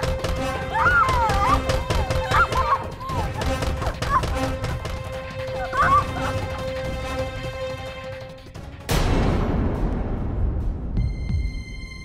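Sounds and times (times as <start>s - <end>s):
tense background music: 0.0s - 12.0s.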